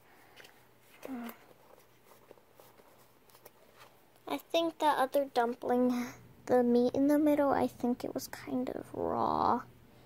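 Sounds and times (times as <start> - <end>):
rustles and taps of toys: 0.2 - 4.3.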